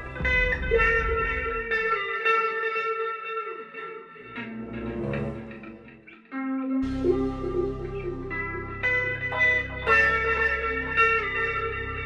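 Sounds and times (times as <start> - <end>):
electric guitar ringing notes: 0.0 - 12.0.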